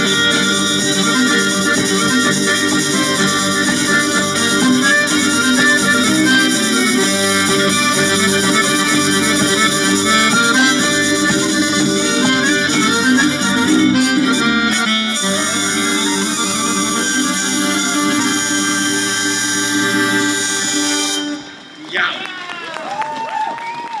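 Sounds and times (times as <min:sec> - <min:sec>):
electric bass: 0:00.0 - 0:21.5
accordion: 0:00.0 - 0:21.9
violin: 0:00.0 - 0:22.1
guitar: 0:00.0 - 0:22.2
hurdy-gurdy: 0:00.0 - 0:22.4.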